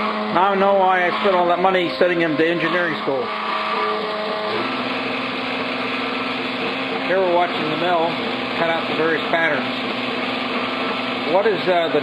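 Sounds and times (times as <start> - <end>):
milling machine hum: 0.0 - 12.0.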